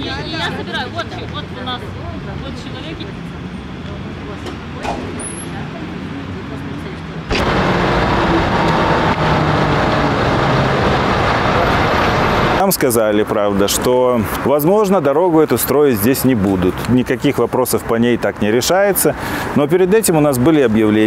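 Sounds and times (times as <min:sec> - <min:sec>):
road traffic rushing: 0:00.0 - 0:21.0
low engine hum: 0:06.6 - 0:12.6.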